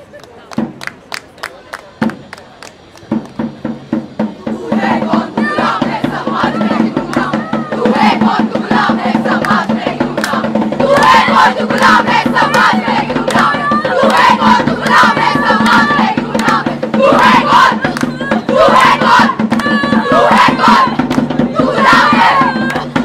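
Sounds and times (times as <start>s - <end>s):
sharp rhythmic beats: 0.6s - 23.0s
women shouting and chanting: 4.5s - 23.0s.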